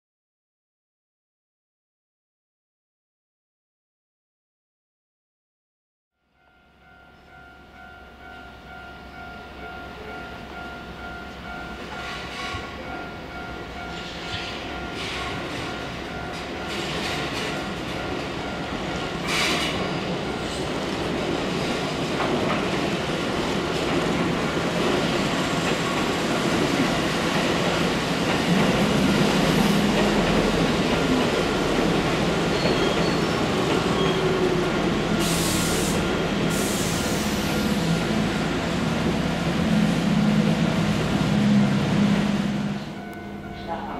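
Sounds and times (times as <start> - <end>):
electric train running past: 6.3 - 43.9
train wheels screeching: 11.9 - 12.9, 13.8 - 15.8, 19.2 - 20.8, 28.4 - 38.2.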